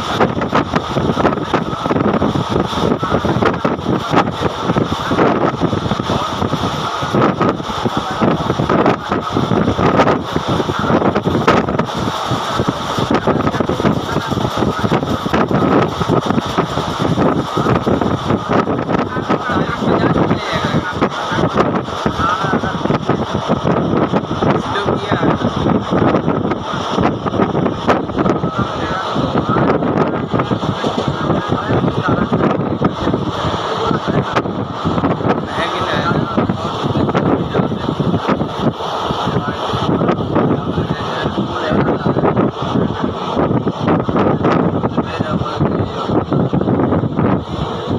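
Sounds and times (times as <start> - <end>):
train rumbling at high speed: 0.0 - 47.9
wind buffeting microphone: 0.0 - 47.9.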